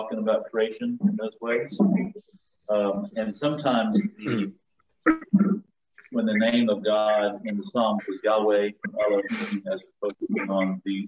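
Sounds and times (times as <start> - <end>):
man clearing his throat: 4.2 - 4.5.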